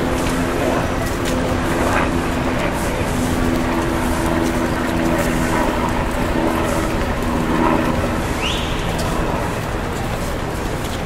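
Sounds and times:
traffic noise: 0.0s - 11.0s
vehicle engine humming nearby: 0.0s - 11.0s.

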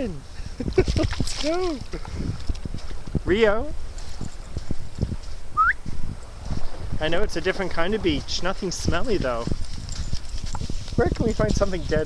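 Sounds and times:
wind rumble on microphone: 0.0s - 12.0s
short rising whistle: 5.6s - 5.9s.

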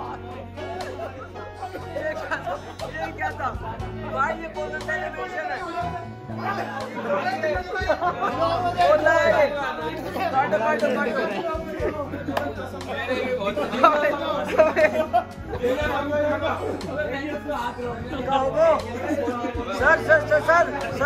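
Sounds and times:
men talking and calling out: 0.0s - 21.0s
music with steady bass line: 0.0s - 21.0s.

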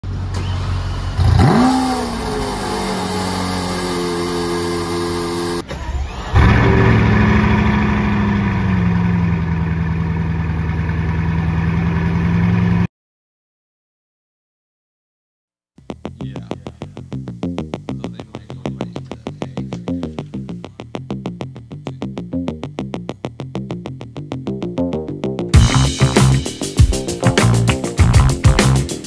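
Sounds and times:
car engine starting and idling: 0.0s - 12.9s
deep car engine starting and idling: 0.0s - 12.9s, 25.5s - 29.0s.

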